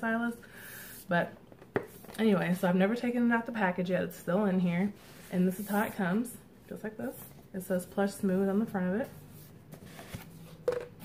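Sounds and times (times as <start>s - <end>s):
cardboard and paper rustling: 9.7s - 10.6s.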